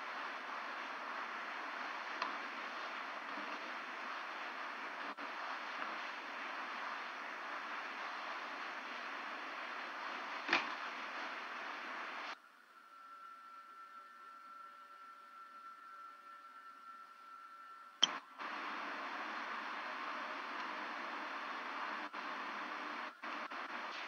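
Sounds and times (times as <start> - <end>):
audio line hiss: 0.0 - 24.0
thin steady tones: 0.0 - 24.0
click: 2.2 - 2.4, 18.0 - 18.2.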